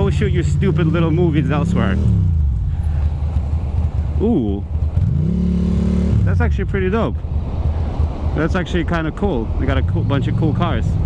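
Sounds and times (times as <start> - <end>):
motorcycle engine running: 0.0 - 6.8.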